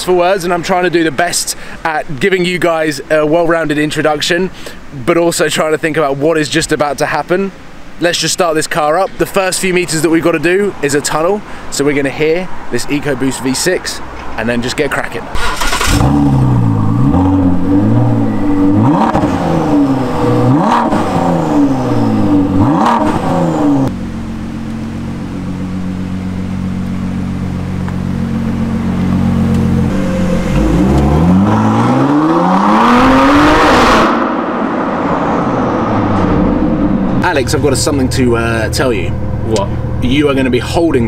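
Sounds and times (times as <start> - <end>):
car engine revving and idling: 15.4 - 41.0.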